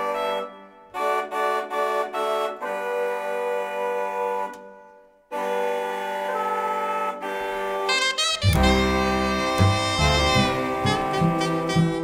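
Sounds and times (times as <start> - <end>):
reed instruments playing chords: 0.0 - 4.6, 5.3 - 12.0.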